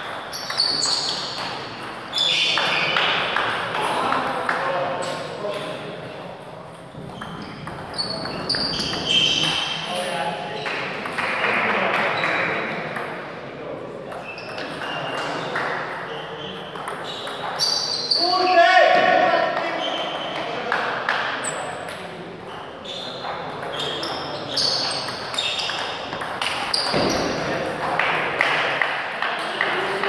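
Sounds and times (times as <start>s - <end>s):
people's voices in hall: 0.0s - 30.0s.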